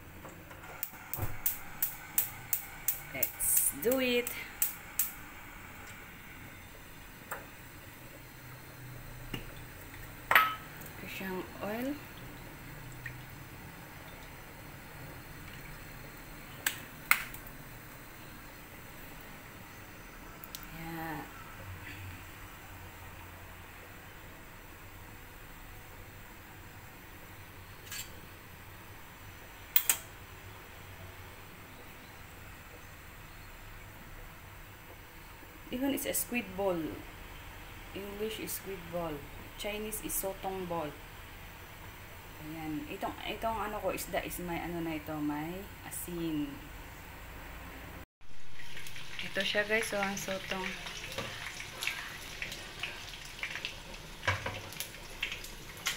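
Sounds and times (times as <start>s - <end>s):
gas stove burner hissing: 0.0s - 30.6s, 33.2s - 47.3s, 48.6s - 55.9s
fan humming: 0.0s - 55.9s.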